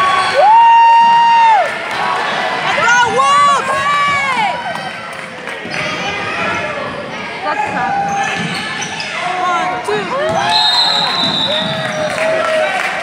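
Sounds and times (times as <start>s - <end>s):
sneakers squeaking: 5.7s - 12.1s
referee whistle: 10.4s - 12.1s.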